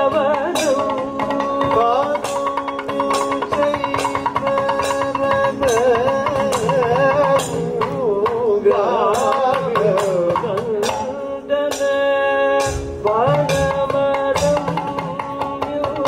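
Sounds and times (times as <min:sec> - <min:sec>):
hand-played barrel drum: 0:00.0 - 0:16.0
men singing ornamented melody: 0:00.0 - 0:16.0.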